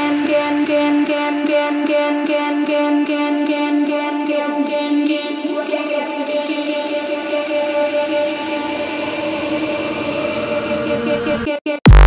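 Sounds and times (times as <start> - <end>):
noise wash: 0.0 - 11.5
sustained synth pad chords: 0.0 - 11.5.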